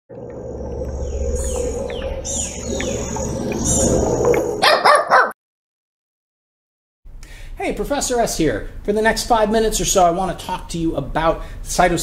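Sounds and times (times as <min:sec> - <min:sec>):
low hum: 0:00.1 - 0:04.6
high whine: 0:00.1 - 0:04.7.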